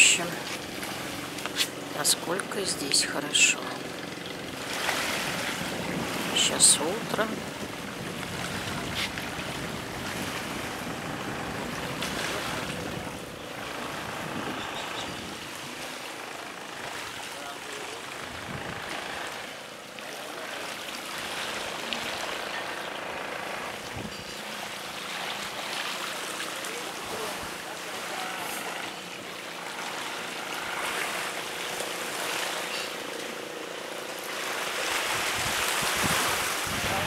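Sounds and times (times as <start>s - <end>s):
waves washing on pebbles: 0.0s - 14.5s, 24.5s - 37.0s
distant boat engine hum: 0.0s - 37.0s
faint voices: 10.7s - 33.2s.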